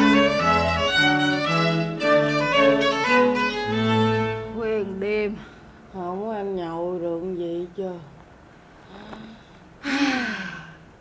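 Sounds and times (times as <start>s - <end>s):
woman sighing: 8.9s - 10.9s.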